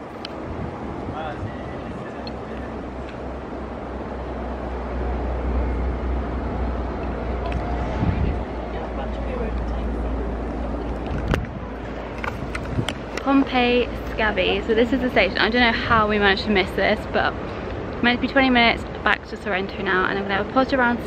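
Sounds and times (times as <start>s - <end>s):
train rumbling on track: 0.0s - 21.0s.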